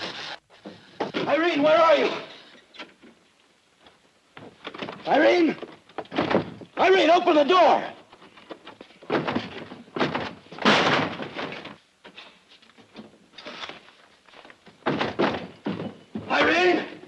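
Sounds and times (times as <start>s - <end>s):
wooden door banging open: 0.6s - 3.1s, 4.4s - 7.0s, 9.0s - 11.8s, 14.7s - 17.0s
heavy thumps and knocks: 4.3s - 6.9s, 8.6s - 11.8s, 14.6s - 16.6s.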